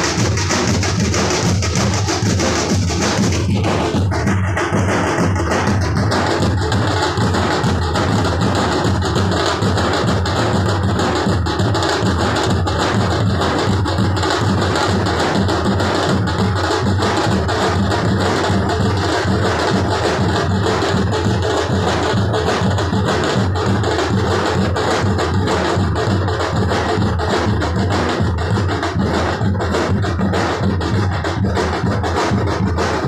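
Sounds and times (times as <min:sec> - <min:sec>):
fast loud drumming: 0:00.0 - 0:33.0.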